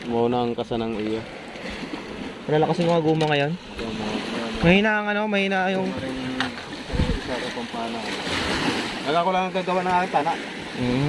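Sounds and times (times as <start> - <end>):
waves splashing against shore: 0.0 - 11.0.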